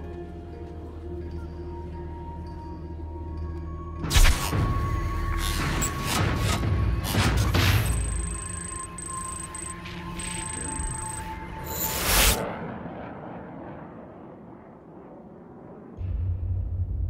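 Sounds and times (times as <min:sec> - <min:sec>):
low drone: 0:00.0 - 0:17.0
high electronic beeps: 0:07.7 - 0:11.9.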